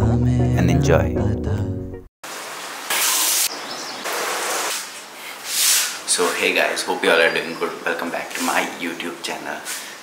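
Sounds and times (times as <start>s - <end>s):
loud burst of hiss: 2.8s - 6.1s.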